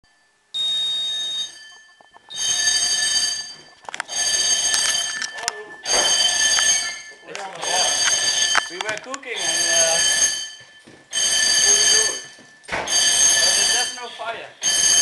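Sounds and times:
smoke detector beeping: 0.0 - 15.0.

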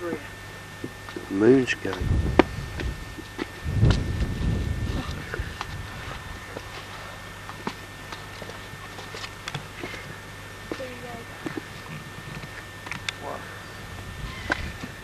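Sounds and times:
faint steady hum: 0.0 - 15.0
wind rumble on microphone: 1.9 - 6.6, 13.8 - 15.0.

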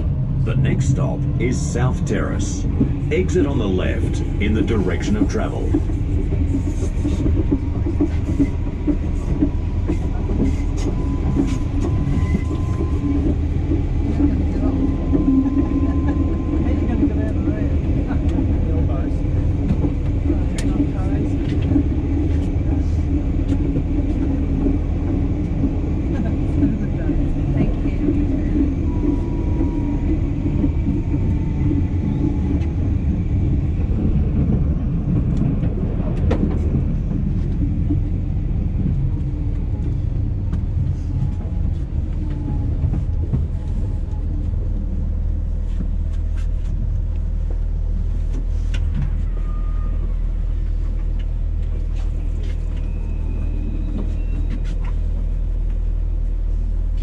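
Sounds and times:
tram wheels rumbling on rails: 0.0 - 57.0.

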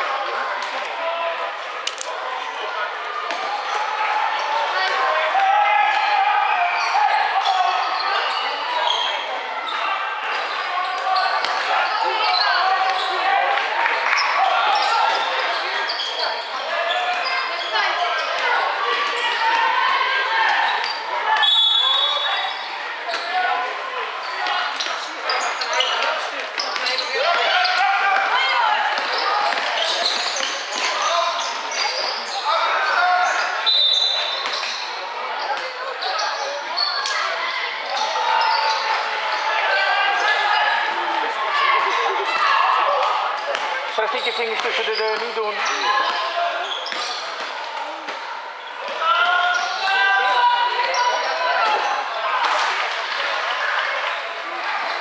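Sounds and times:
overlapping voices in echoing hall: 0.0 - 55.0.

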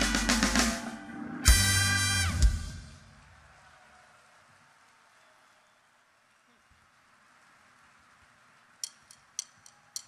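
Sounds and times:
drumstick click: 8.8 - 10.0.

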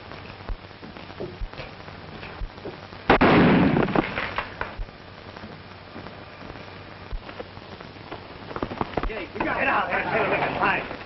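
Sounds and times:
loud bang with crackling rattle: 0.5 - 4.9.

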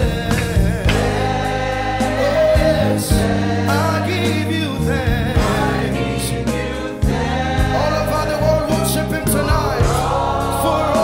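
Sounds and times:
drum and cymbal hits: 0.0 - 11.0
electric bass guitar: 0.0 - 11.0
keyboard: 0.0 - 11.0
voices singing: 0.0 - 11.0.

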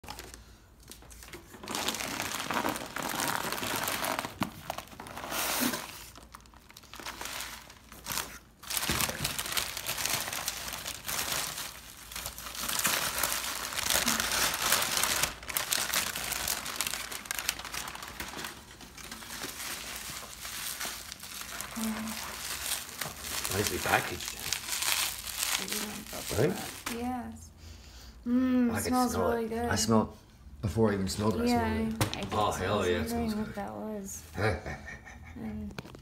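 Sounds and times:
paper and plastic crinkling: 0.0 - 27.2.

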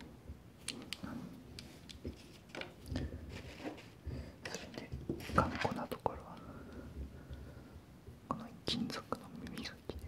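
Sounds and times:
man whispering: 4.4 - 6.8, 8.2 - 10.0.

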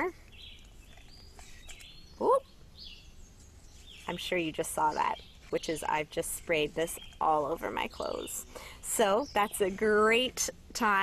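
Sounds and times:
soft high bird chirps: 0.0 - 9.8
faint background noise: 0.0 - 11.0.

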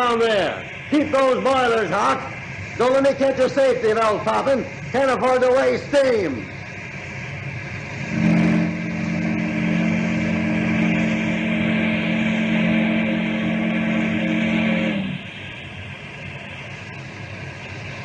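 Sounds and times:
running steam machinery: 0.0 - 18.0
steamboat whistle blast: 7.9 - 15.3.

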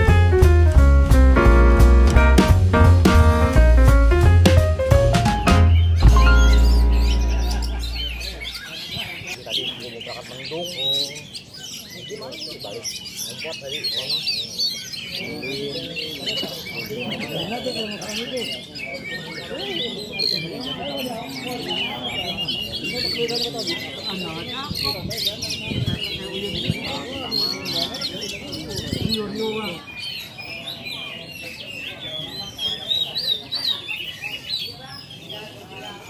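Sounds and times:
low music note: 1.4 - 8.6
birds singing and chirping: 5.3 - 36.0.

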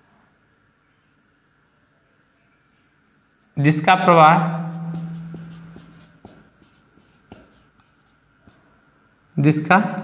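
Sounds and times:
marker writing on a whiteboard: 3.8 - 9.0
marker tip ticking on board: 4.6 - 8.6.

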